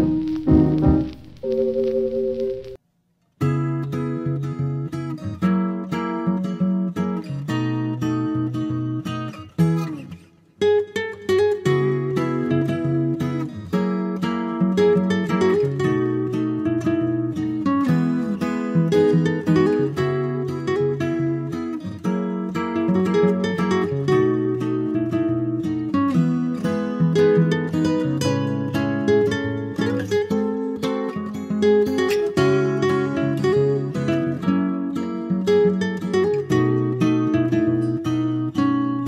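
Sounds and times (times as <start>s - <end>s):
acoustic guitar music: 0.0s - 39.0s.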